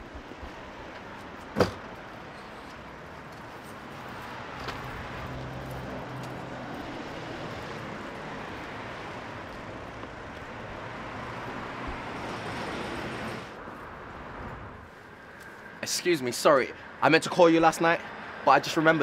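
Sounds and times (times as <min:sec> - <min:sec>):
street traffic noise: 0:00.0 - 0:19.0.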